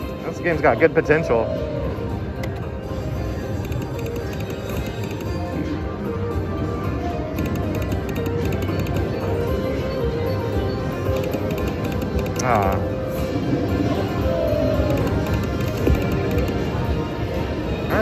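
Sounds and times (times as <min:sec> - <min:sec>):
electronic slot machine music: 0:02.0 - 0:18.0.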